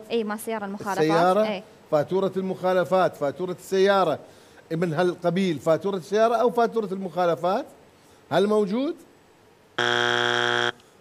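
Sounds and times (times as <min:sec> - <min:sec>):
harsh wrong-answer buzzer: 0:09.8 - 0:10.9.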